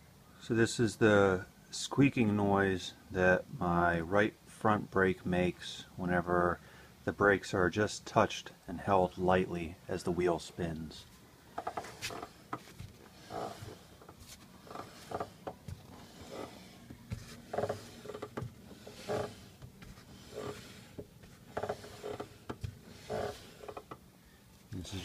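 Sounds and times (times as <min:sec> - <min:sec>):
disc brake groaning: 0:11.6 - 0:24.0.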